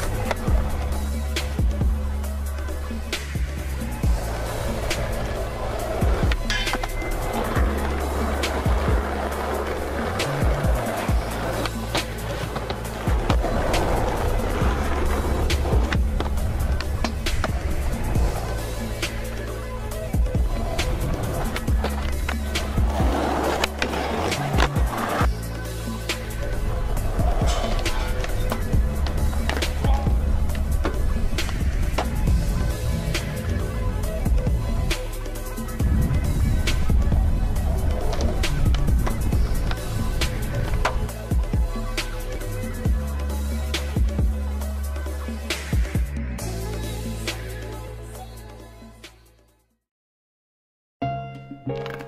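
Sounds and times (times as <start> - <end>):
skateboard wheels rolling on concrete: 0.0 - 49.2
background music: 0.0 - 49.8, 51.0 - 52.0
skateboard clacks popping and landing: 21.5 - 25.3.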